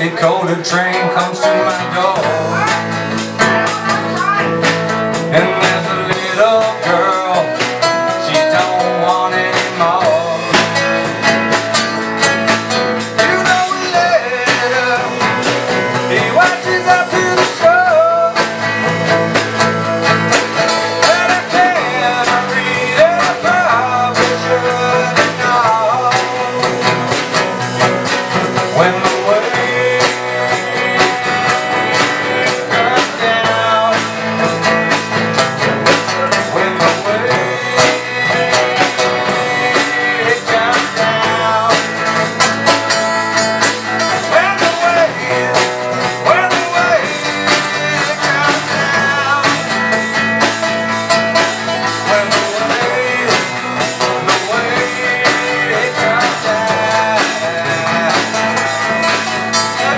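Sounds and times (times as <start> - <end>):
acoustic guitar: 0.0 - 59.9
drum kit: 0.0 - 59.9
electric guitar: 0.0 - 59.9.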